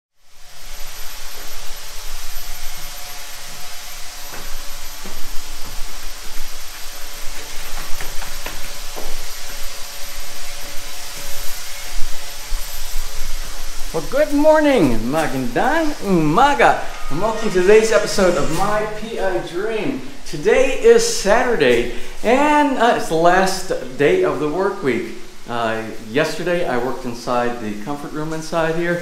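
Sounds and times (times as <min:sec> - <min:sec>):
hiss-like background noise: 0:00.2 - 0:29.0
scattered knocks: 0:04.3 - 0:09.8.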